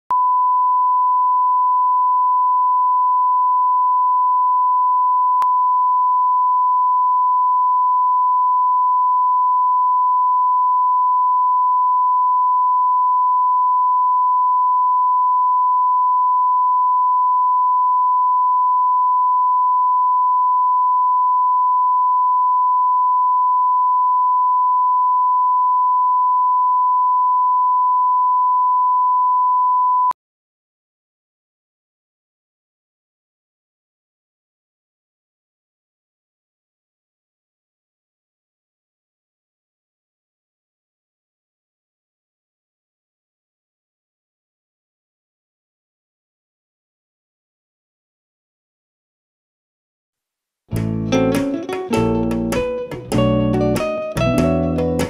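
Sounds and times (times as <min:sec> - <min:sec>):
steady sine test tone: 0:00.1 - 0:30.2.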